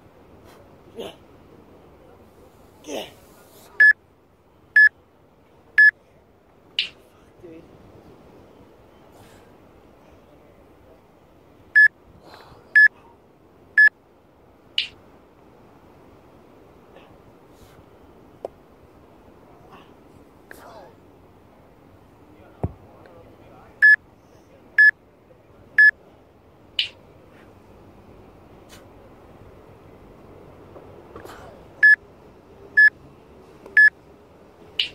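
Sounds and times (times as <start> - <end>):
faint steady background noise: 0.0 - 34.9.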